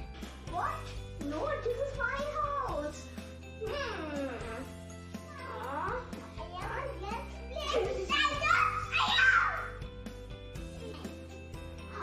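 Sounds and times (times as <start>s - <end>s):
background music: 0.0s - 12.0s
child shouting and squealing: 7.6s - 9.8s.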